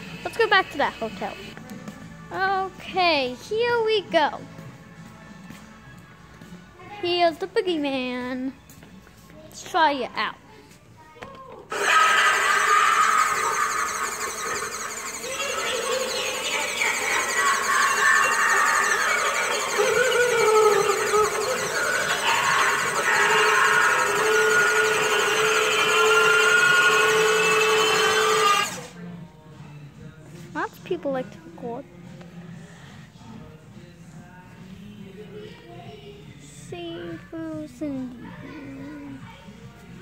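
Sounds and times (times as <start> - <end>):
loud steady mechanical whirring: 0.0 - 1.6, 11.7 - 29.0.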